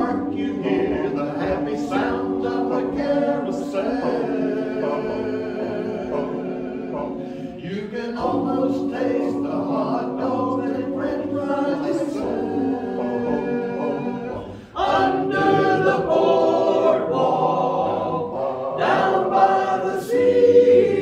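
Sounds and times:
men's chorus singing a cappella: 0.0s - 21.0s.

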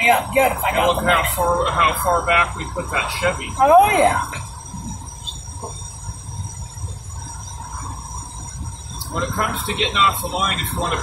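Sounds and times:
car engine and tyre rumble: 0.0s - 11.0s
faint steady tone: 0.0s - 11.0s.

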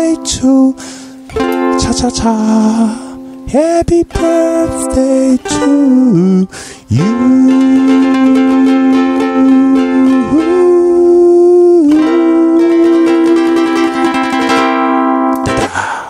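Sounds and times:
man singing held notes: 0.0s - 14.2s
ukulele strummed: 0.0s - 16.0s.

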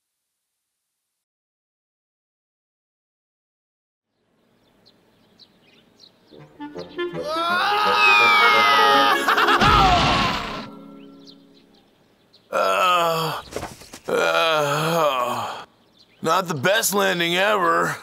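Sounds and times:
cartoon music: 6.3s - 11.7s
descending falling whistle: 7.2s - 10.7s
person groaning: 7.2s - 10.7s, 12.5s - 13.4s, 14.1s - 15.7s.

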